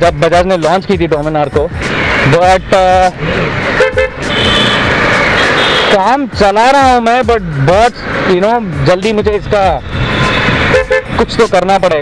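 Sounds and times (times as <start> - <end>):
road traffic: 0.0 - 12.0
wind and road noise: 0.0 - 12.0
high-pitched vehicle horn honking: 3.8 - 6.0, 10.0 - 11.2.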